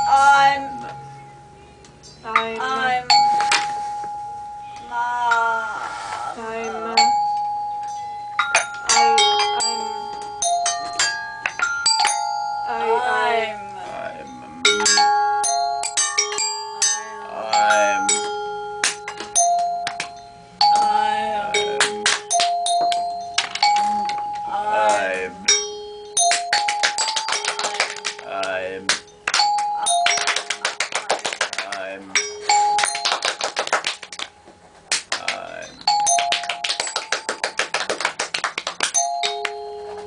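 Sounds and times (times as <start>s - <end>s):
held vocal tones: 8.7s - 10.3s, 16.5s - 18.5s, 27.4s - 29.2s, 35.1s - 36.0s.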